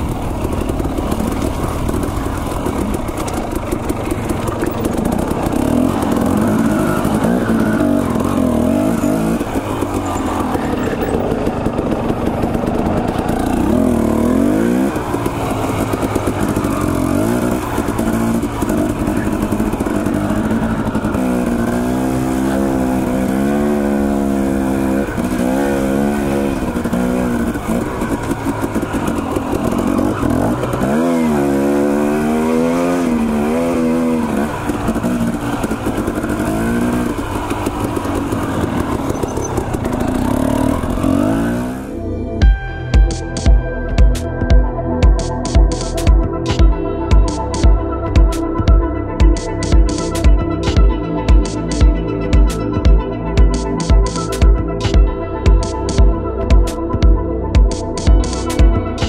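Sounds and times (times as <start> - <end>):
dirt bike engine revving: 0.0 - 44.5.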